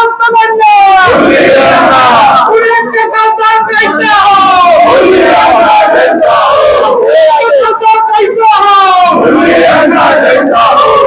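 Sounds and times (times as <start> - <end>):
crowd of men shouting slogans: 0.7 - 11.0.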